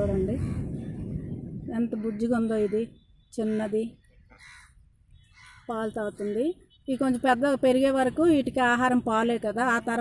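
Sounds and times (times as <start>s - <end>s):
faint raspy calls: 2.0s - 6.4s.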